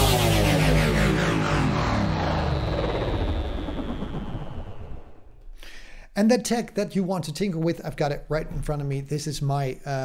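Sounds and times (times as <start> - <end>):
electronic whoosh with falling tone: 0.0 - 5.5.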